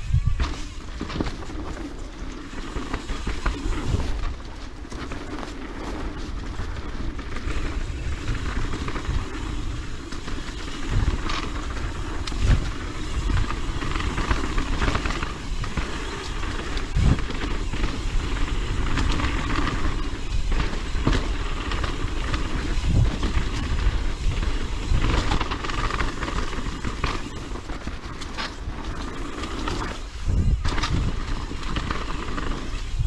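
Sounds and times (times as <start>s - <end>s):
wind on microphone: 0.0s - 1.9s, 5.4s - 33.0s
bike rattling: 0.0s - 33.0s
bike tyres on dirt: 0.0s - 33.0s.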